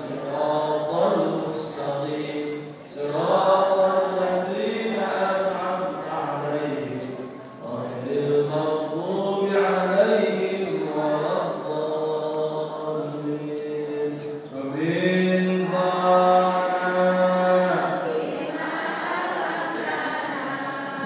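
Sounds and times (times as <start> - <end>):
man chanting: 0.0 - 18.0.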